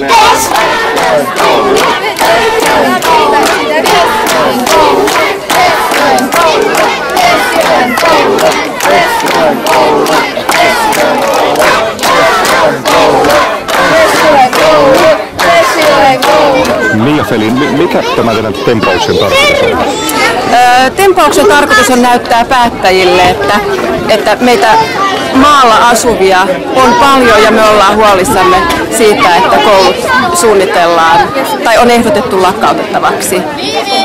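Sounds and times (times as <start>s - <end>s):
children shouting together: 15.8s - 20.5s, 33.5s - 34.0s.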